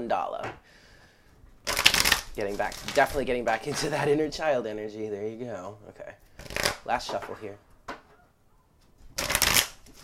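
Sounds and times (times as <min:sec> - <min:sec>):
cards riffle shuffling: 0:01.6 - 0:03.9, 0:06.4 - 0:06.9, 0:09.1 - 0:10.0.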